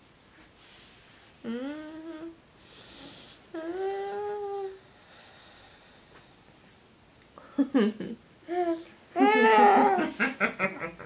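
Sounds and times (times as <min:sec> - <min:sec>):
breathy hiss: 0:00.5 - 0:06.8
person humming: 0:01.4 - 0:02.4, 0:03.5 - 0:04.8.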